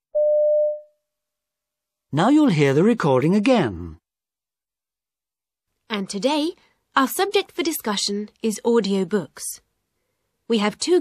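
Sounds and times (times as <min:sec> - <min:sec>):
electronic beep: 0:00.2 - 0:00.9.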